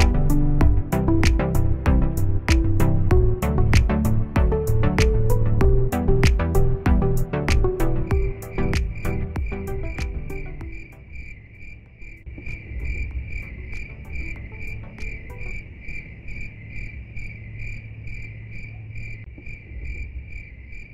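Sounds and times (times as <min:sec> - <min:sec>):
music: 0:00.0 - 0:11.3, 0:12.2 - 0:16.5
insects chirping: 0:00.0 - 0:20.9.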